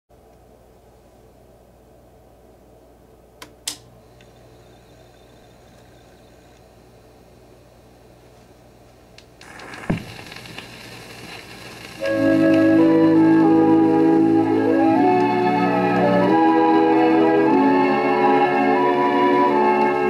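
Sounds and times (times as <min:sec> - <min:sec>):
record player low hum: 0:00.1 - 0:20.0
record surface hiss and crackle: 0:00.1 - 0:20.0
record player clicks: 0:09.2 - 0:12.8
stylus thump on record: 0:09.4 - 0:10.6
music from record: 0:09.4 - 0:20.0.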